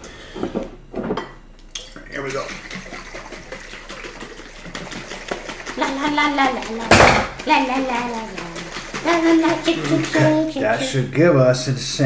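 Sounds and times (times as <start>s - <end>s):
liquid sloshing in glass jars: 1.7s - 11.0s.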